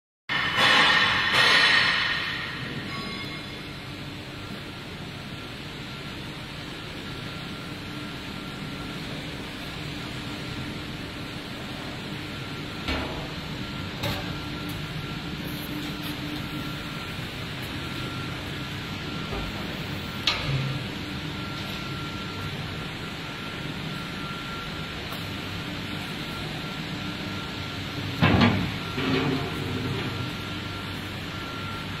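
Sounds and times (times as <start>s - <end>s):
conveyor machinery humming: 0.3s - 32.0s
faint broken high tone: 2.7s - 3.9s.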